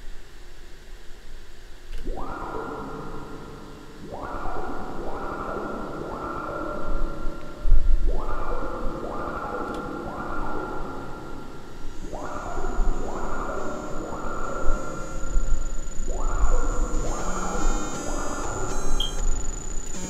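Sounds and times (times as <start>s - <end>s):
buzzy synthesizer chords: 8.1s - 20.0s
deep synth bass: 12.0s - 20.0s.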